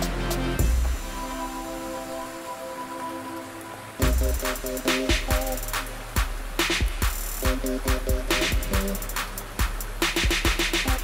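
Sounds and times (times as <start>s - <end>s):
steady rain: 0.0s - 11.0s.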